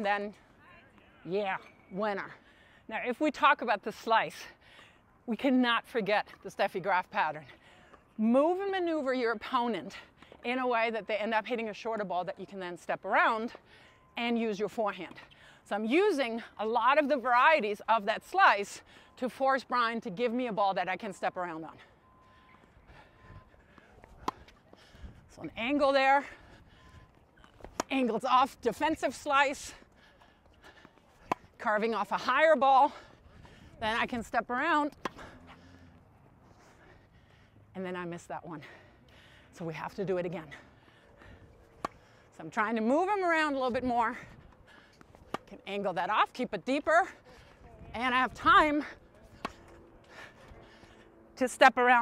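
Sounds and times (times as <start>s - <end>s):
quiet outdoor background: 0.0s - 52.0s
tennis racket hitting ball: 27.6s - 28.2s, 31.2s - 31.6s, 34.9s - 35.2s, 41.8s - 42.0s, 49.3s - 49.8s
tennis ball pop: 41.8s - 42.0s, 49.4s - 49.6s.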